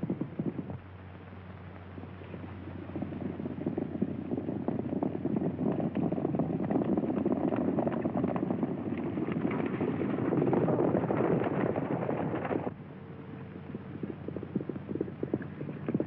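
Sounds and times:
horses galloping hooves: 0.0s - 12.8s, 14.2s - 16.0s.

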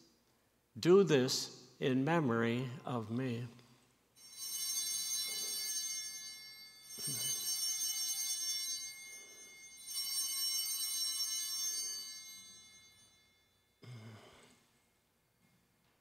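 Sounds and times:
altar bells ringing: 4.2s - 14.4s.

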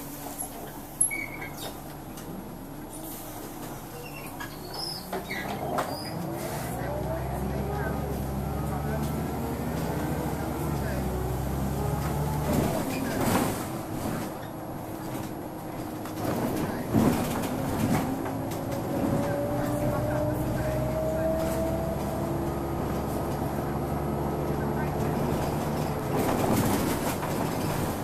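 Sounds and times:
bus engine droning: 0.0s - 28.0s
bus body rattles and knocks: 3.5s - 6.4s, 11.8s - 28.0s.

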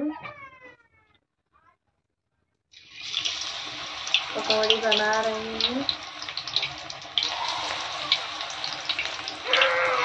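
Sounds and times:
batter frying in hot oil: 2.8s - 10.0s
crackles and pops: 2.8s - 10.0s.

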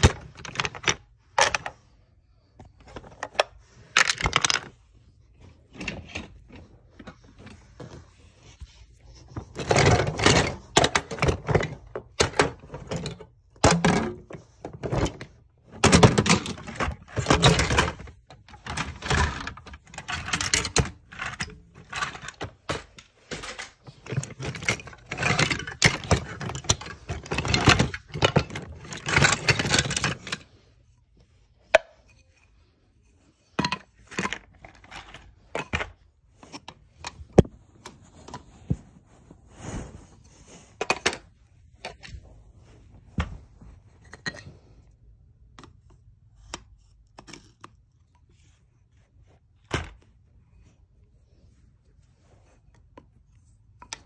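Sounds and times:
wooden toy track pieces clattering: 2.9s - 4.8s, 15.0s - 30.5s.

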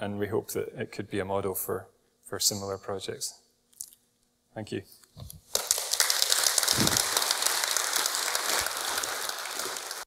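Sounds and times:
audience applauding: 5.6s - 10.0s.

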